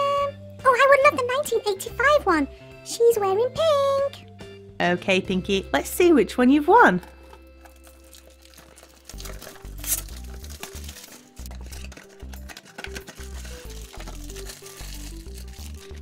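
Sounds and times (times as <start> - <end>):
soft background music: 0.0 - 16.0
packaging crinkling: 7.2 - 16.0.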